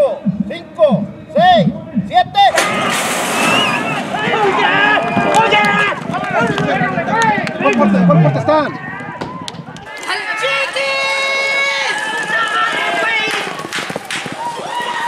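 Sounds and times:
people shouting and yelling: 0:00.0 - 0:15.0.

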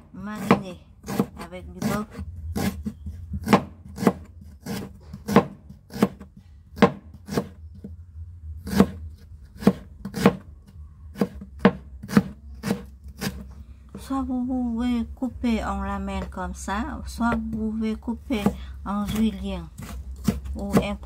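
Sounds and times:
knife chopping on wooden board: 0:00.4 - 0:02.0, 0:02.6 - 0:07.6, 0:08.6 - 0:09.0, 0:09.6 - 0:10.4, 0:11.1 - 0:13.4, 0:18.4 - 0:21.0.

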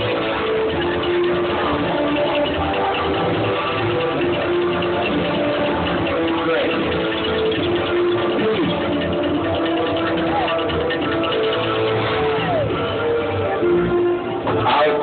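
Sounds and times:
crowd chattering: 0:00.0 - 0:15.0
music over loudspeakers: 0:00.0 - 0:15.0.

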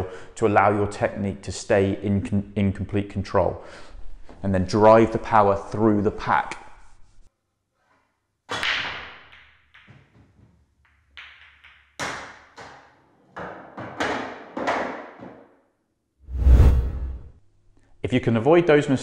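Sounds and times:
deep whoosh: 0:16.3 - 0:17.4.

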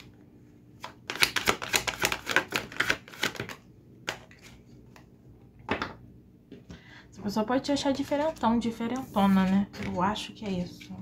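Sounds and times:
cards shuffled by hand: 0:00.8 - 0:05.1.

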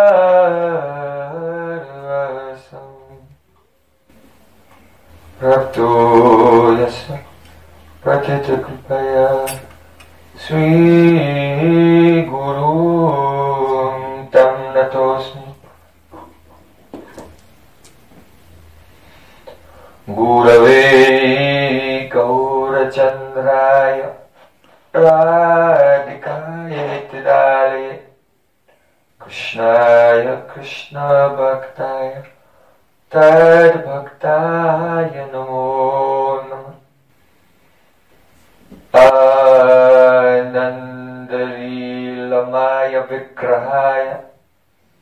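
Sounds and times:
man chanting: 0:00.0 - 0:03.4, 0:05.3 - 0:16.6, 0:20.0 - 0:24.3, 0:24.9 - 0:28.2, 0:29.2 - 0:32.3, 0:33.1 - 0:36.9, 0:38.9 - 0:44.4.

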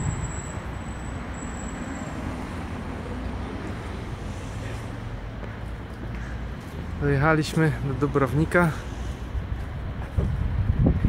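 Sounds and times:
wind buffeting microphone: 0:09.3 - 0:11.0.

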